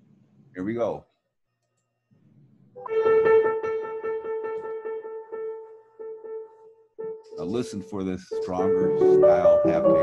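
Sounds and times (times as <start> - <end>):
piano piece: 2.8 - 10.0.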